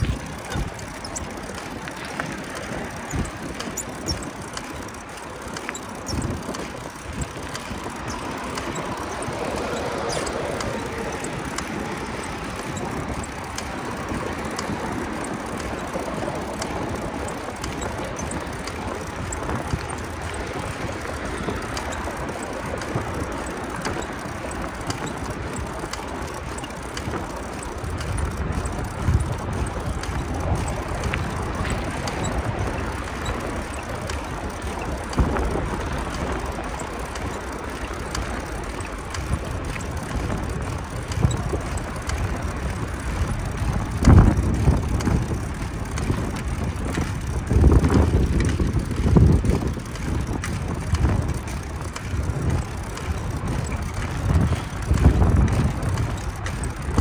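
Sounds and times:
bicycle clicks and rattles: 0.0s - 57.0s.

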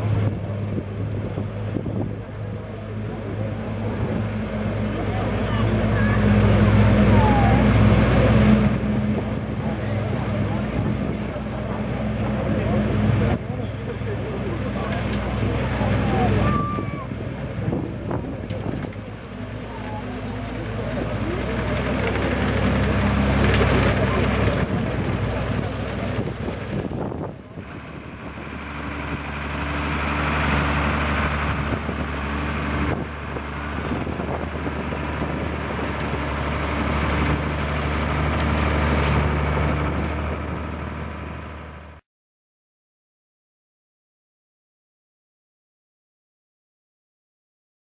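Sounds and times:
tractor engine running under load: 0.0s - 42.0s.

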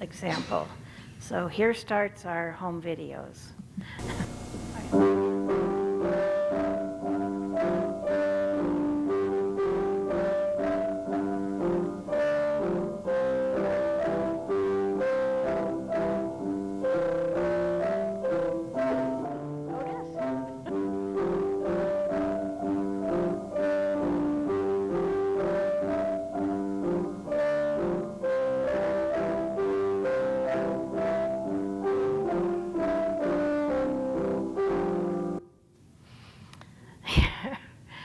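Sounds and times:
piano duet: 4.0s - 35.4s.

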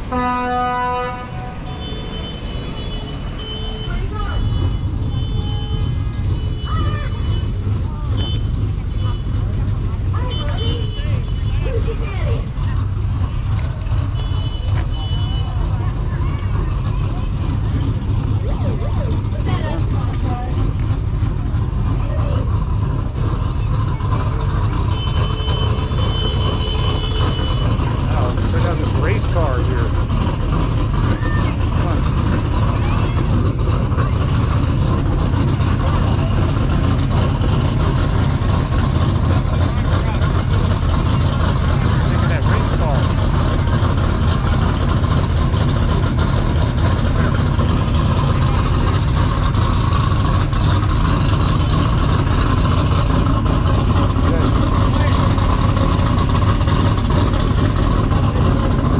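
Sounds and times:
steady low rumble: 4.4s - 58.9s.

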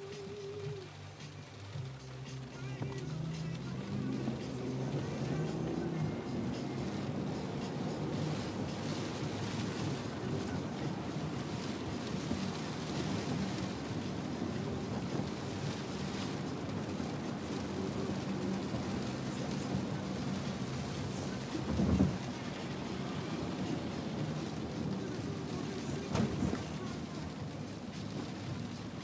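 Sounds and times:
car engine and tyres on wet road: 0.0s - 29.0s
rain hissing on car roof: 0.0s - 29.0s.

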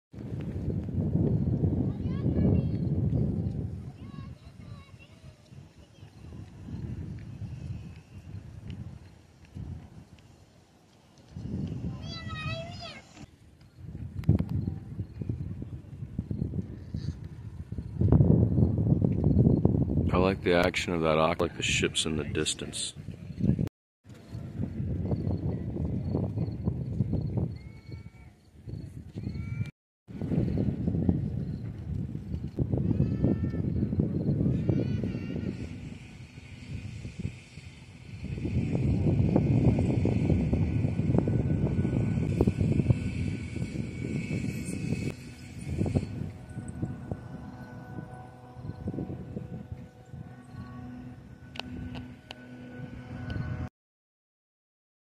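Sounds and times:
wind buffeting microphone: 0.1s - 53.7s
steady high hiss: 35.2s - 49.1s.

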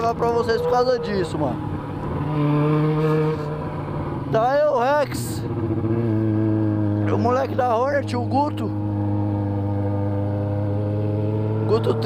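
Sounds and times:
motorcycle engine cruising: 0.0s - 12.0s.

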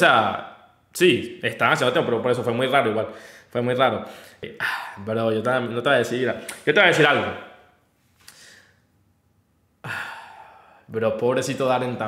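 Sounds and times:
man sighing: 9.8s - 10.8s.

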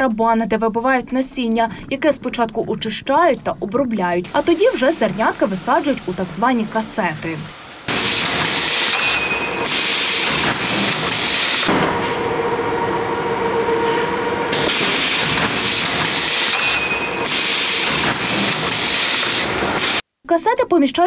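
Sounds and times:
seeding machine rattle and hiss: 7.8s - 11.7s, 14.7s - 20.0s.

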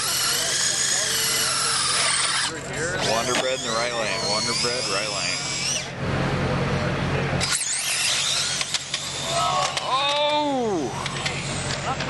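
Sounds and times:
rc car motor whine: 0.0s - 6.0s, 6.8s - 12.0s.

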